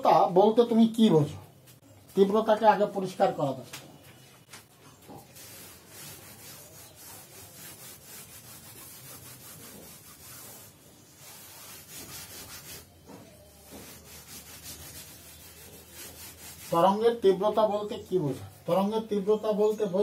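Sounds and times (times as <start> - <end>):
duster rubbing chalkboard: 4.6 - 18.9.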